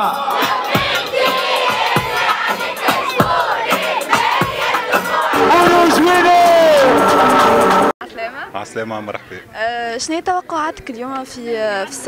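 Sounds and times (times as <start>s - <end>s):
crowd shouting and singing: 0.0s - 7.9s
deep kick drum thumps: 2.9s - 3.5s.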